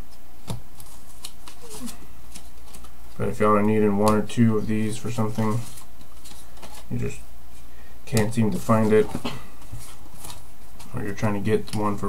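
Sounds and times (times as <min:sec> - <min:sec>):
steady low hum: 0:00.0 - 0:12.0
trading cards rustling and clicking: 0:00.1 - 0:07.2, 0:08.1 - 0:12.0.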